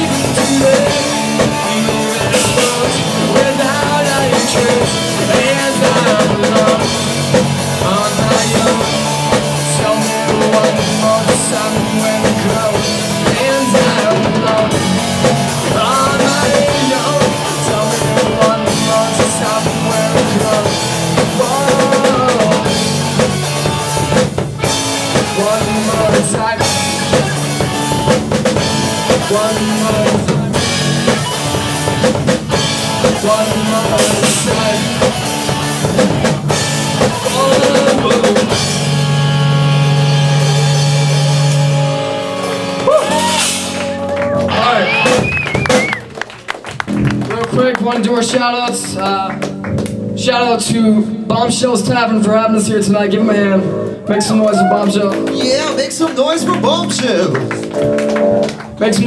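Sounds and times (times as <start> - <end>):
rock band final chord: 0.0 - 45.8
drum kit: 0.0 - 59.0
electric guitars through amplifiers: 0.0 - 59.0
crowd shouting and whooping: 13.3 - 14.2, 42.2 - 46.2, 54.1 - 58.2
people clapping: 42.4 - 50.1, 54.2 - 59.0.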